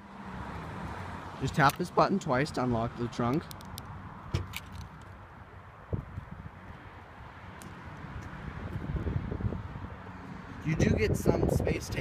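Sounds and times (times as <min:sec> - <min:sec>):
wind buffeting microphone: 0:05.8 - 0:06.8, 0:07.9 - 0:12.0.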